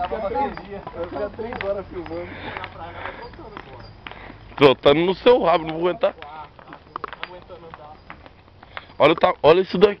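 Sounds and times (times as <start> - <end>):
footsteps on asphalt: 0.0 - 10.0.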